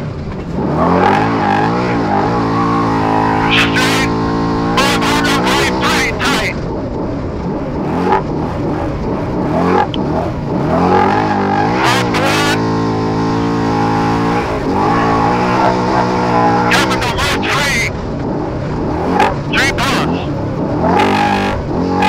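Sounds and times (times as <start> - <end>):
tyres rumbling on dirt: 0.0 - 22.0
race engine revving: 0.4 - 22.0
voice over intercom: 3.4 - 4.2, 4.8 - 6.6, 11.9 - 12.6, 16.4 - 18.0, 19.5 - 20.3.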